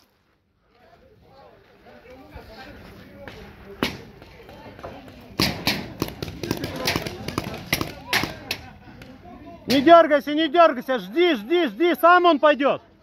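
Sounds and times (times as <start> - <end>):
paintball gun pops: 5.4 - 8.6.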